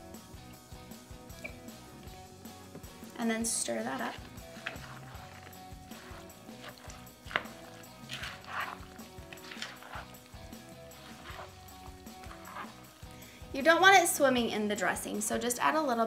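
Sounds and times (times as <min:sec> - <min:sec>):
soft background music: 0:00.0 - 0:16.0
spoon stirring salsa in a bowl: 0:02.7 - 0:13.8.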